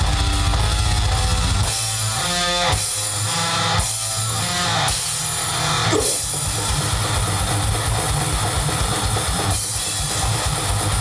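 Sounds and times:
heavily distorted guitars: 0.0s - 11.0s
metal band playing live: 0.0s - 11.0s
rapid kick drumming: 5.9s - 8.4s.

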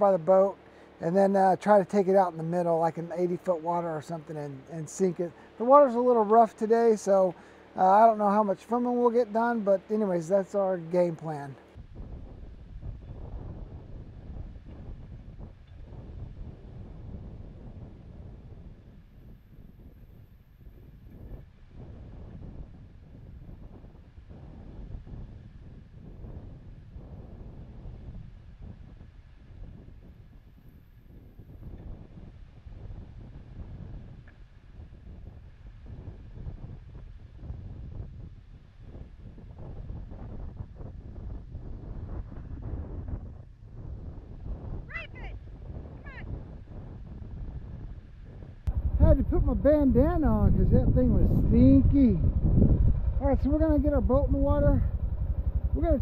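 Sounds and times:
wind buffeting microphone: 0.0s - 56.0s
tractor engine running: 48.7s - 56.0s.

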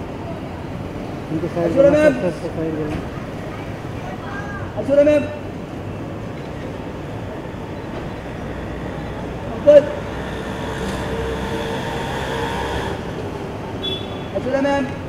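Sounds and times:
car engines idling: 0.0s - 15.0s.

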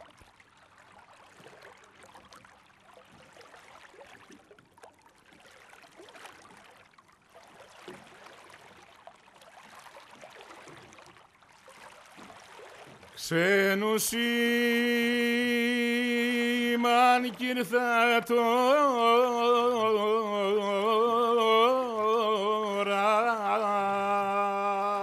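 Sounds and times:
tiny water splashes: 0.0s - 25.0s
water lapping and trickling: 0.0s - 25.0s.

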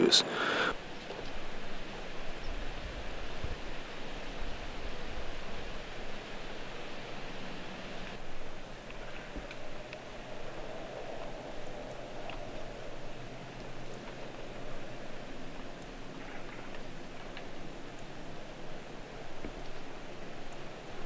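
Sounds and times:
faint ticks: 8.0s - 21.0s.

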